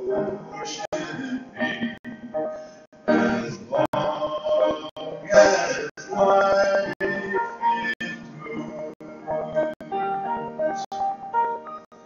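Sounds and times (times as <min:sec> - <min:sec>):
man singing: 0:00.0 - 0:02.4, 0:03.0 - 0:09.8
upright piano: 0:00.0 - 0:12.0.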